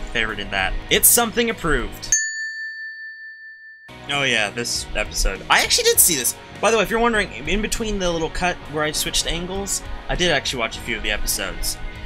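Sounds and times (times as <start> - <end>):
bell-like ding: 2.1 - 4.6.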